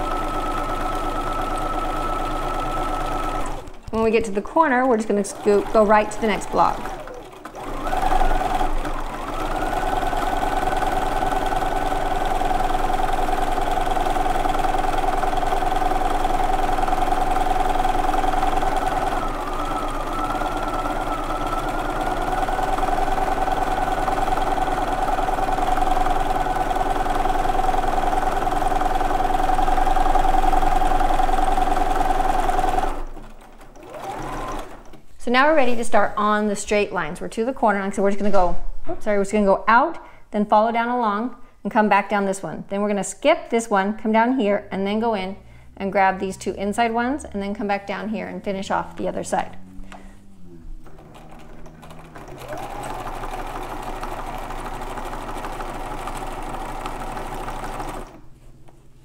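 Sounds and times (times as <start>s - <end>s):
sewing machine running: 0.0s - 35.1s, 50.2s - 58.3s.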